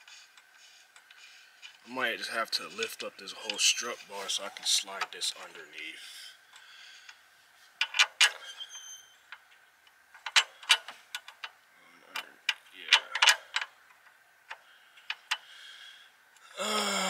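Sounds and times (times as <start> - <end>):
metallic clicks of nut and washer: 7.8 - 8.7, 9.3 - 11.6, 12.2 - 15.4.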